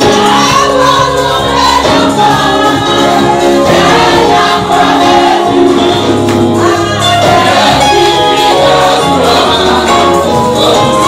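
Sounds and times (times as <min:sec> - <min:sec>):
choir singing gospel music: 0:00.0 - 0:11.0
instrumental backing: 0:00.0 - 0:11.0.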